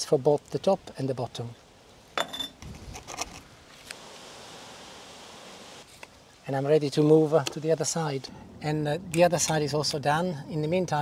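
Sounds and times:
faint background hiss: 0.0 - 11.0.

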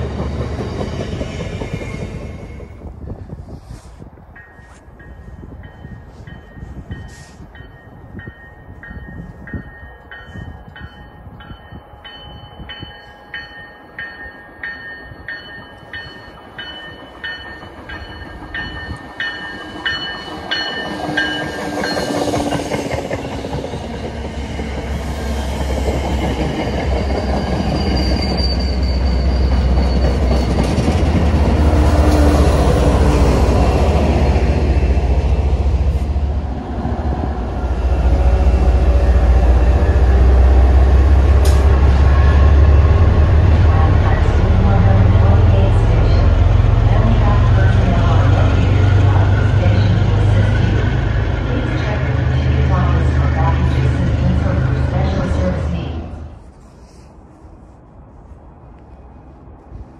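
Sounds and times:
train wheels rumbling on rails: 0.0 - 56.9
diesel locomotive: 0.0 - 59.9.

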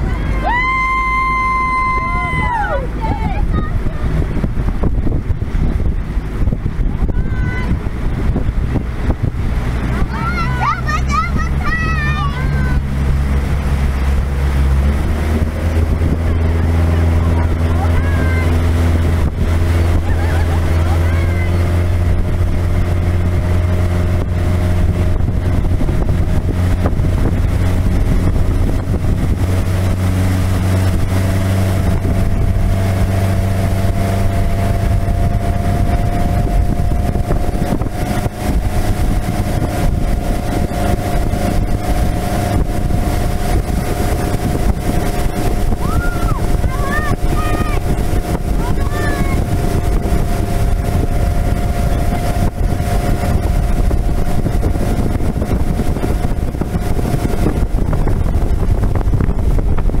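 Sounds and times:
motorboat engine running: 0.0 - 60.0
water rushing past: 0.0 - 60.0
wind on microphone: 0.0 - 60.0.

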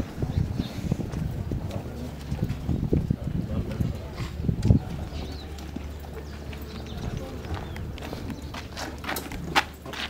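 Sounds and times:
footsteps: 0.0 - 10.0
low voices murmuring: 0.0 - 10.0.

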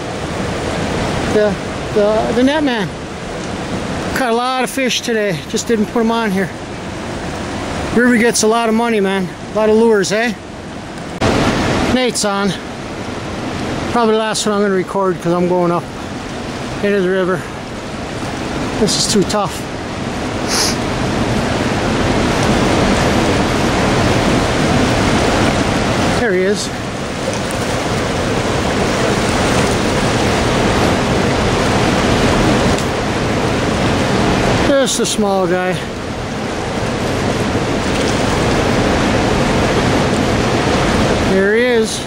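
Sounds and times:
river current rushing: 0.0 - 42.0.

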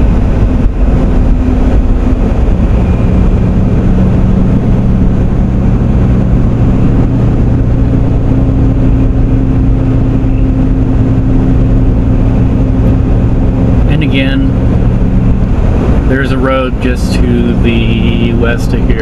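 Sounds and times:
car engine and road noise: 0.0 - 19.0.

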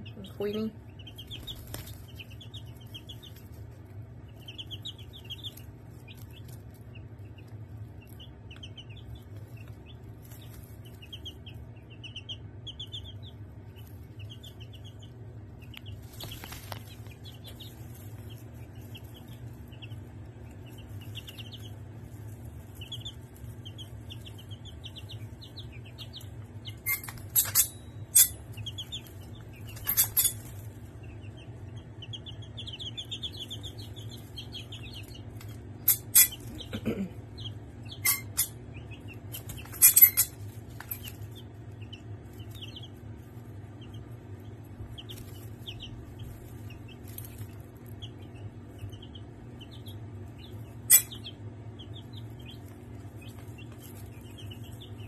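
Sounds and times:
chicks peeping: 0.0 - 55.0
low steady hum: 0.0 - 55.0.

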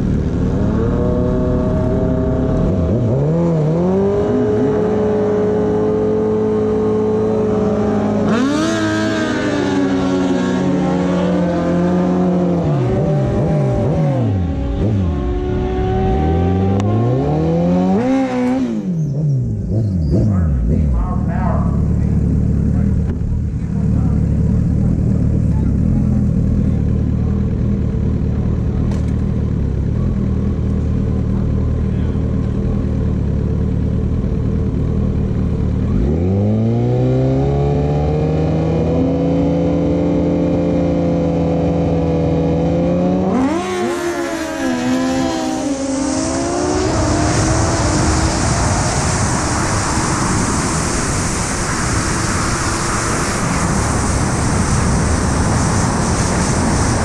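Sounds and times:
motorcycle engine revving and idling: 0.0 - 57.0
wind noise: 45.9 - 57.0.

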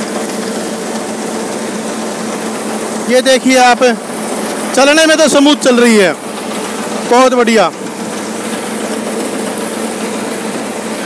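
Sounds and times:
tractor and straw reaper whirring: 0.0 - 11.0.

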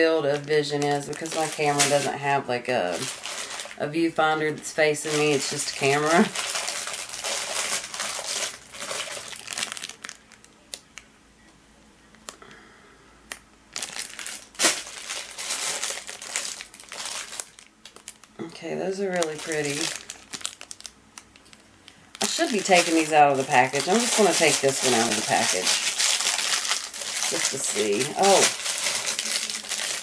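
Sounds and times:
person speaking: 0.0 - 3.2, 3.8 - 6.4, 22.2 - 26.0, 27.2 - 28.6
plastic bag crinkling: 0.0 - 10.8, 13.7 - 30.0.

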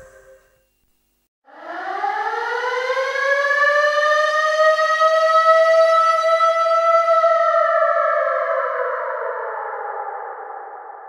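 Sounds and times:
reggae music: 0.0 - 0.6.

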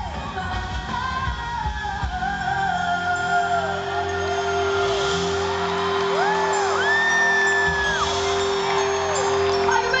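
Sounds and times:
live band music in a hall: 0.0 - 10.0.

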